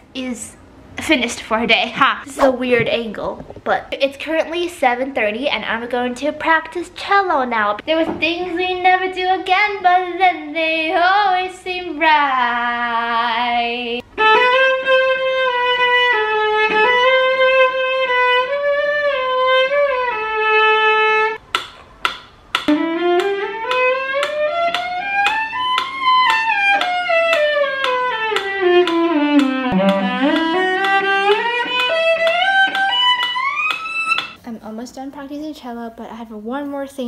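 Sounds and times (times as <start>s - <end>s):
cello played with bow: 14.1s - 21.4s, 22.7s - 34.4s.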